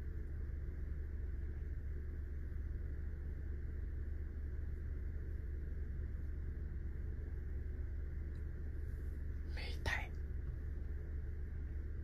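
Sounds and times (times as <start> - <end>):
low hum in car cabin: 0.0 - 12.0.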